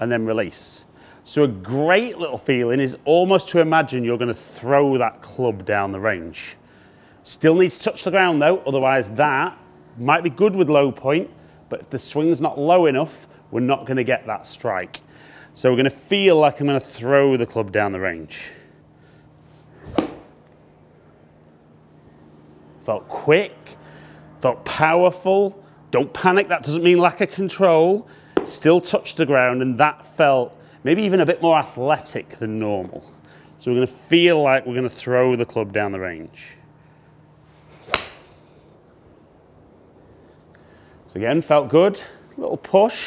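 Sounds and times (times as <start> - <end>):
faint steady hum: 0.0 - 43.0
golf club striking ball: 19.9 - 20.4, 28.4 - 28.6, 37.8 - 38.5.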